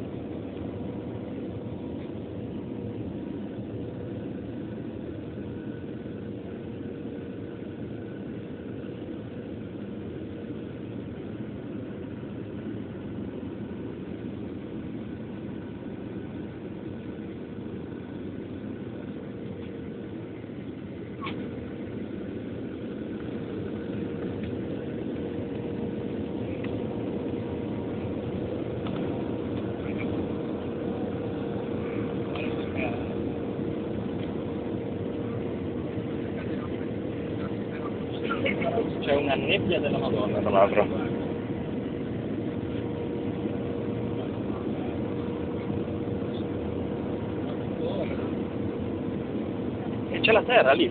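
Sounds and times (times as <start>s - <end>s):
airplane cabin drone: 0.0s - 50.9s
constant hum: 0.0s - 50.9s.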